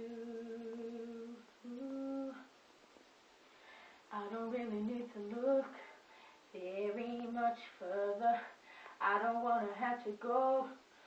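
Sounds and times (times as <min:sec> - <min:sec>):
girl singing unaccompanied: 0:00.0 - 0:02.6, 0:04.0 - 0:11.0.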